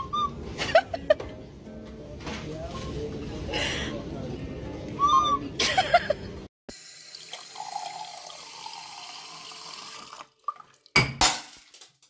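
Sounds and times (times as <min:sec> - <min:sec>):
tap water running into glass: 0:06.8 - 0:11.1
glass shattering in sink: 0:10.9 - 0:12.0.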